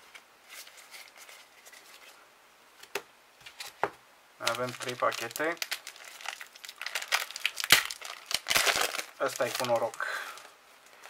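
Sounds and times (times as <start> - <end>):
foil wrapper crinkling: 4.4 - 11.0
sharp crack of foil splitting: 5.2 - 9.9.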